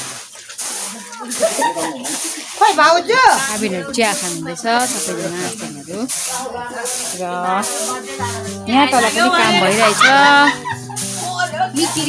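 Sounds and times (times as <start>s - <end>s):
steady high hiss: 0.6s - 12.0s
people talking: 0.8s - 12.0s.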